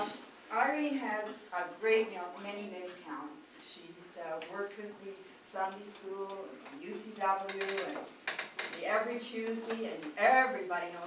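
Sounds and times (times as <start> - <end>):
cutlery and dishes clinking: 7.4 - 9.0.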